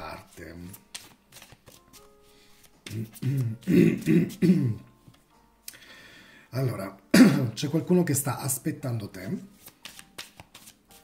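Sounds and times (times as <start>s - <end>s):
cards shuffling: 0.0s - 4.4s, 9.5s - 11.0s.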